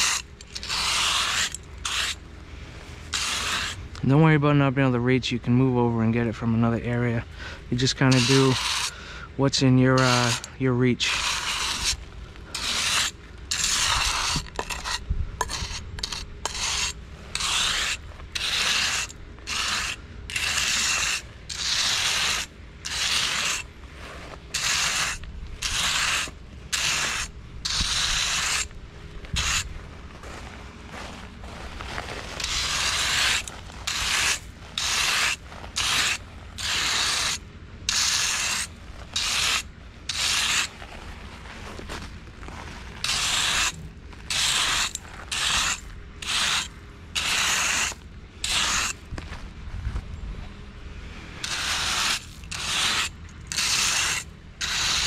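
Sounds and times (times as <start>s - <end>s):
trowel scraping over stone chips: 0.0s - 2.2s, 2.8s - 4.4s, 6.2s - 49.4s, 51.4s - 55.0s.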